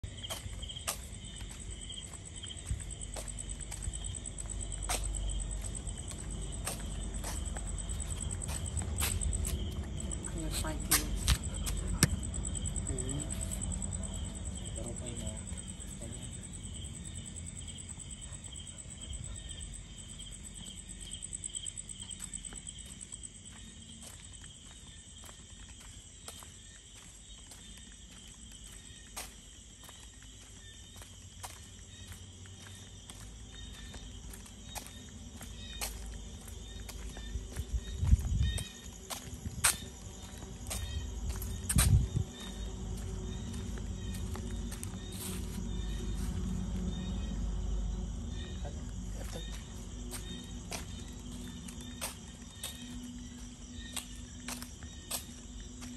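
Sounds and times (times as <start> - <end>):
footsteps on concrete: 0.0 - 47.3, 48.3 - 55.9
crickets trilling: 0.0 - 55.9
slower insect chirp: 0.0 - 55.9.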